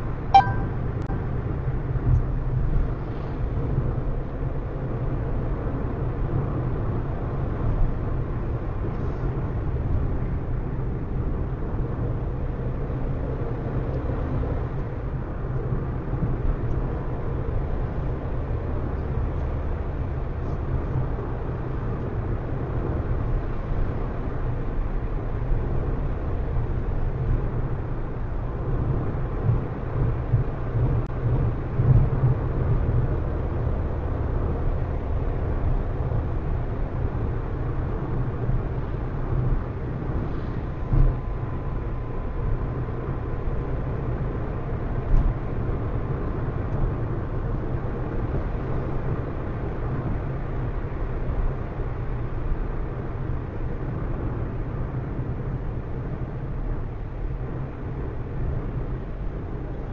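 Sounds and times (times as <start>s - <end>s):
car road and engine rumble: 0.0s - 59.9s.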